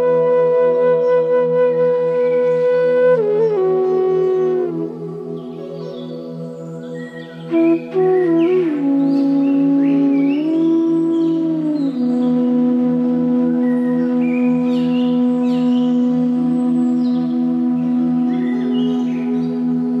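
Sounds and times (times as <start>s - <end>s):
meditative flute music: 0.0s - 20.0s
birdsong chirping: 2.2s - 12.8s, 13.6s - 20.0s.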